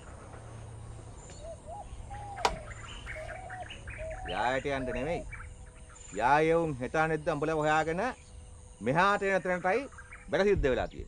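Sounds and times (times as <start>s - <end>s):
birds chirping and whistling: 1.1s - 10.4s
sharp knock: 2.4s - 2.7s.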